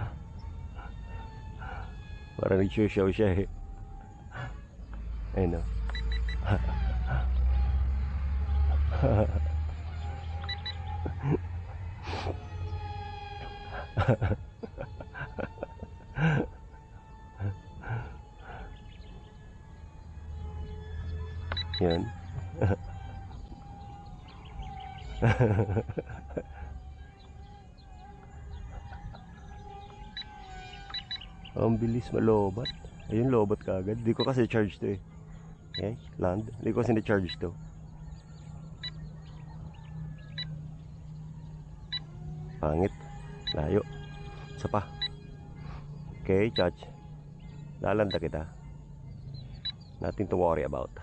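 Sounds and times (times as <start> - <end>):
faint bird chirps: 0.0 - 51.0
high whine of jet motors: 0.0 - 51.0
low hum: 0.0 - 51.0.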